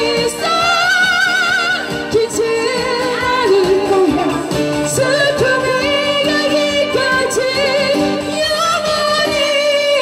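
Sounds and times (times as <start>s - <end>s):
strummed acoustic guitar: 0.0s - 10.0s
woman singing: 0.0s - 10.0s.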